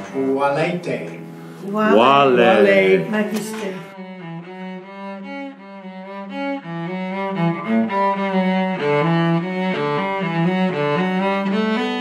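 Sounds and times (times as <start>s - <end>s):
bowed string melody: 0.0s - 12.0s.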